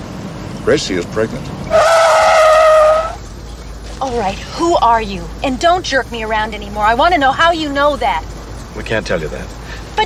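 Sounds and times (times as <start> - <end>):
tyres squealing: 1.6 - 5.0.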